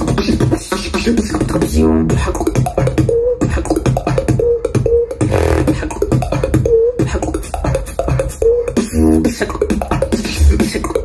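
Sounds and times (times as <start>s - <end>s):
vocal beatboxing: 0.0s - 11.0s
buzzy vocal sound: 5.2s - 5.8s
hummed tone: 5.3s - 5.8s.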